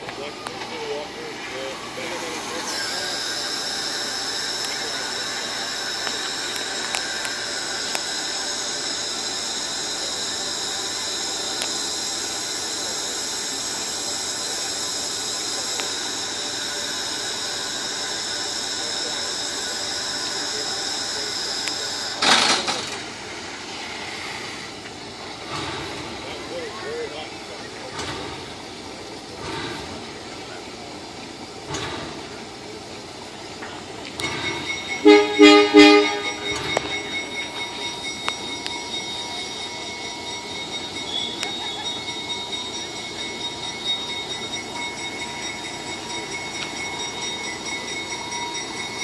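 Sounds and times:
steam locomotive hissing: 0.0s - 49.0s
loud sudden rush of steam: 22.2s - 26.2s.

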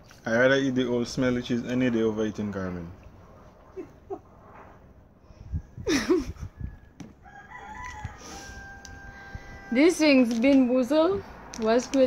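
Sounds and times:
rooster crowing: 6.4s - 10.1s.

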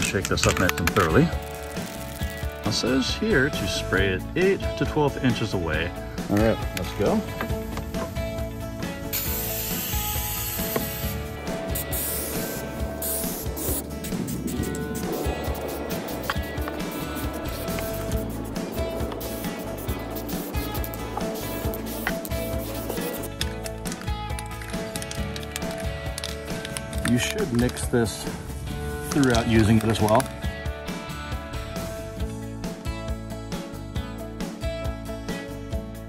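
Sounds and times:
background music: 0.0s - 36.0s
aerosol can spray hissing: 1.4s - 2.5s, 9.1s - 23.5s.

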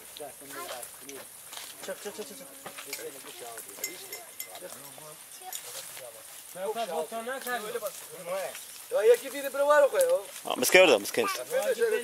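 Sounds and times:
people talking: 0.0s - 1.2s, 1.8s - 12.0s.

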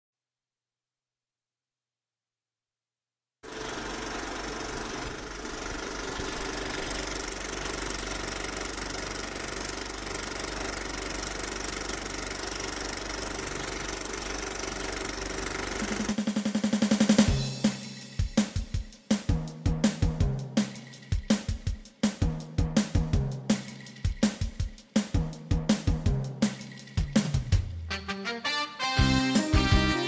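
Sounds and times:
film projector whirring and rattling: 3.4s - 16.4s, 26.4s - 27.3s.

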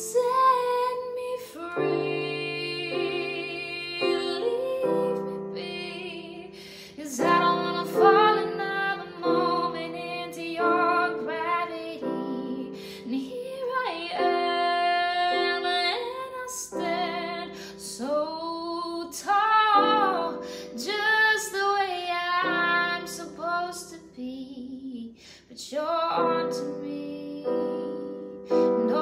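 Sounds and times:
piano chords on keyboard: 0.0s - 23.7s, 25.9s - 29.0s
woman singing: 0.0s - 29.0s.

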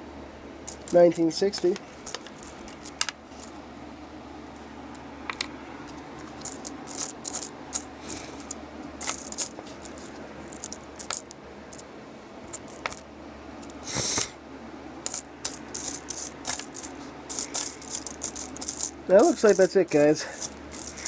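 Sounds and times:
coins clinking together: 0.7s - 3.5s, 5.3s - 11.8s, 12.5s - 13.0s, 15.1s - 21.0s.

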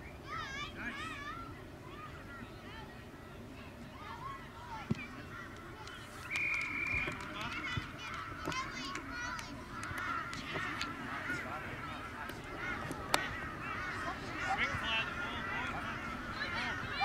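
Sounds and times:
referee's whistle: 6.3s - 7.2s.

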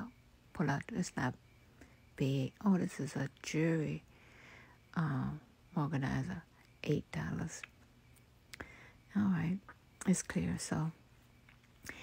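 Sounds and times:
woman speaking softly: 0.0s - 1.4s, 2.2s - 4.1s, 4.9s - 7.7s, 9.1s - 11.0s.

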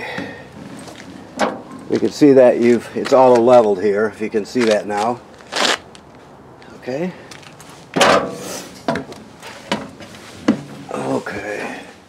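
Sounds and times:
heavy footsteps on metal steps: 7.3s - 10.9s.

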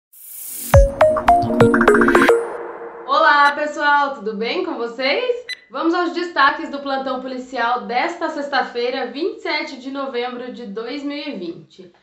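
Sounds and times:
rising whoosh: 0.5s - 3.6s
sharp synth hits: 0.7s - 3.8s
low held synth chord: 0.8s - 3.6s.

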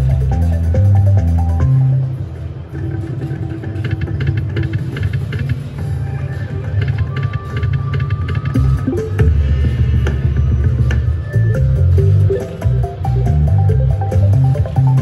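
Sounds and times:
slot machine bonus music: 0.0s - 2.2s, 8.6s - 9.4s, 11.4s - 15.0s.

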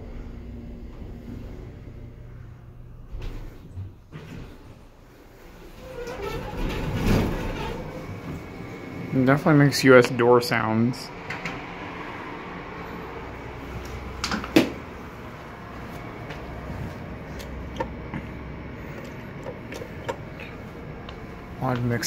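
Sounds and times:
steady low hum: 0.0s - 22.0s
elevator doors closing with thump: 5.6s - 9.4s.

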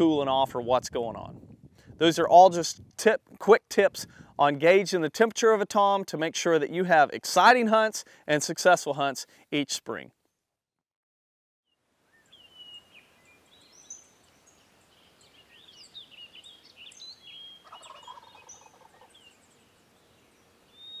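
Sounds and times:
songbirds chirping: 12.0s - 21.0s
turkey gobbling: 17.6s - 19.2s.

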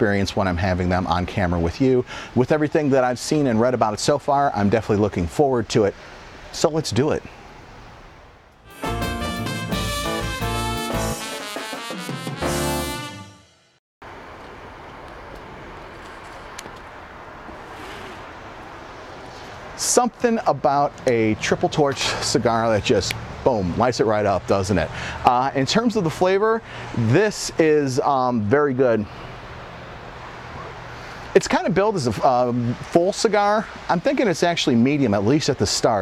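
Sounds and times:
outdoor background hiss: 0.0s - 10.0s, 14.0s - 36.0s
brass band jingle: 8.7s - 13.8s
wind hiss: 14.1s - 20.2s.

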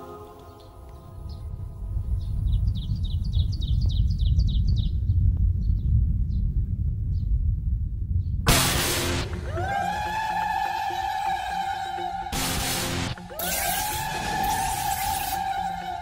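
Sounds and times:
deep low rumbling drone: 1.2s - 10.4s.

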